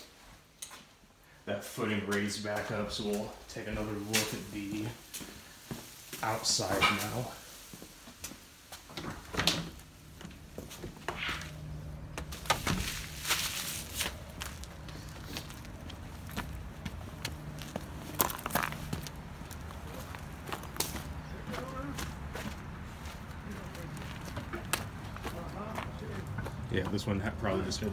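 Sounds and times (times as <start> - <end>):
footsteps on dirt: 2.1 - 9.0, 10.0 - 27.9
low machine hum: 9.8 - 21.9.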